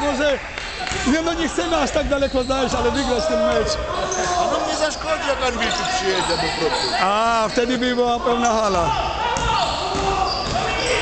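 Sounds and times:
basketball bouncing on court: 0:09.3 - 0:10.9.

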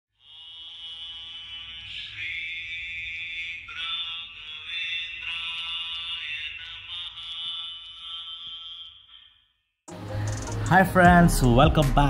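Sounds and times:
devotional chant sung to music: 0:00.4 - 0:07.8.

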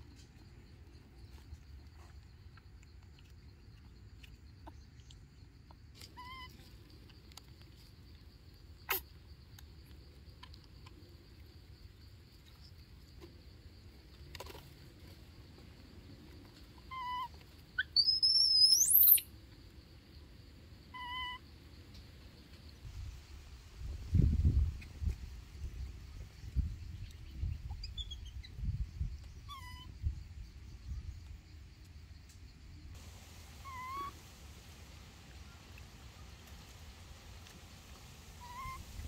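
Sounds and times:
faint outdoor background: 0:00.0 - 0:39.0
baby macaque coo call: 0:06.1 - 0:06.6, 0:16.9 - 0:19.2, 0:20.9 - 0:21.4, 0:29.4 - 0:29.9, 0:33.6 - 0:34.2, 0:38.4 - 0:38.8.

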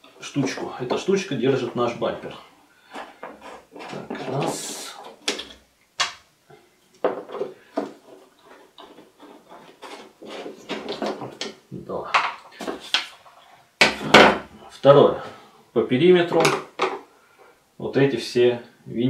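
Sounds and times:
rustling scrape: 0:01.6 - 0:05.2, 0:07.2 - 0:11.4
sharp clicks and knocks: 0:03.0 - 0:06.3.

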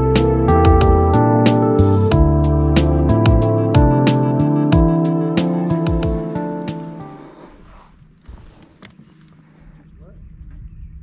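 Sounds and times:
background music: 0:00.0 - 0:07.4.

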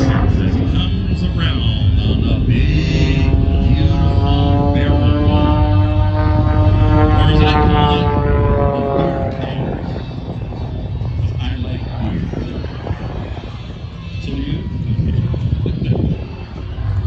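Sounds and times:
airplane engine droning overhead: 0:00.0 - 0:17.0.

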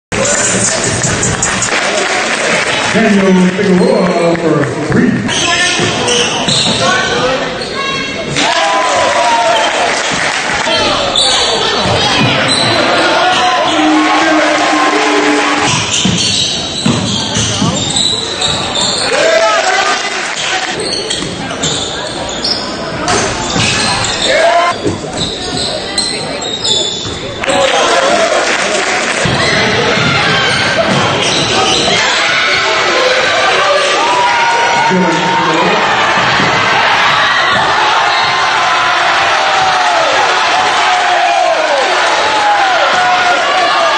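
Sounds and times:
voices echoing in hall: 0:00.2 - 0:43.9
basketball bouncing on court: 0:15.6 - 0:18.7, 0:29.2 - 0:31.9.

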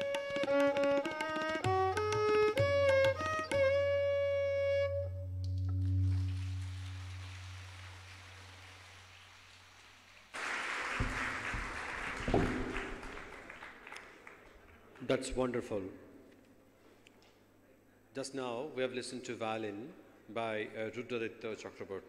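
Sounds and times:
low violin and tabla tone: 0:00.0 - 0:07.8
audience applause: 0:06.0 - 0:14.8.

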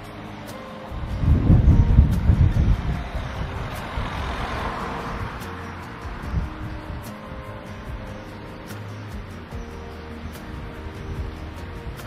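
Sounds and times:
road noise: 0:00.0 - 0:12.0
vehicle driving past: 0:00.9 - 0:07.1.

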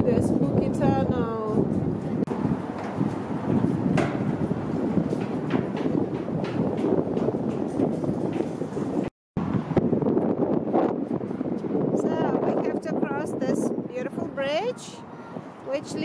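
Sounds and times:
footstep taps: 0:02.2 - 0:09.1.

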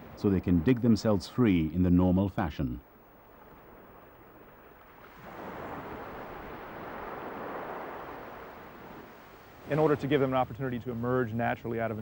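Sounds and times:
ocean surf washing on beach: 0:03.4 - 0:12.0.

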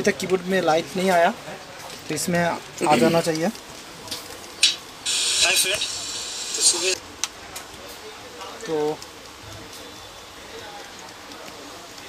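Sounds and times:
steady high hiss: 0:04.5 - 0:07.0.

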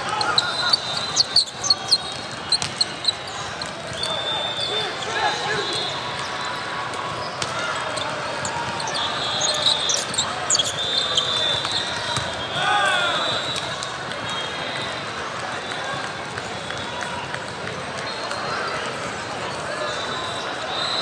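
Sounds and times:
sneakers squeaking on court: 0:00.0 - 0:12.6
players calling out: 0:00.0 - 0:16.2.

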